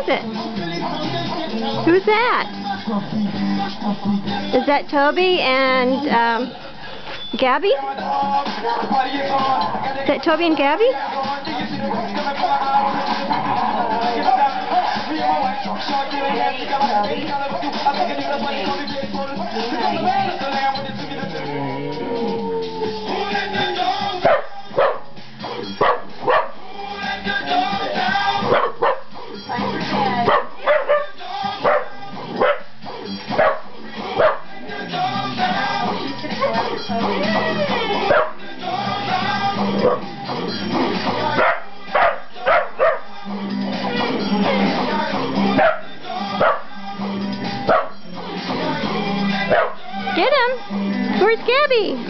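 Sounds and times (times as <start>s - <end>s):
music with singing: 0.0s - 52.0s
dog barking: 24.2s - 25.1s, 25.8s - 26.6s, 28.4s - 29.1s, 30.3s - 32.7s, 33.3s - 34.6s, 38.0s - 38.4s, 39.8s - 40.1s, 41.4s - 43.1s, 45.6s - 46.7s, 47.7s - 48.0s, 49.5s - 49.9s.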